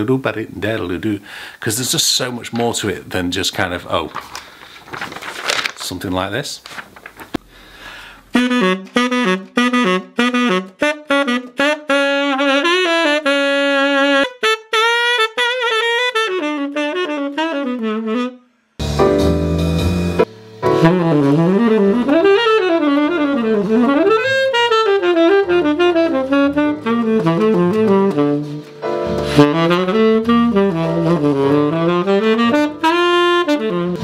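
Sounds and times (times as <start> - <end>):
tenor saxophone jazz phrase: 8.3 - 18.4, 20.6 - 34.0.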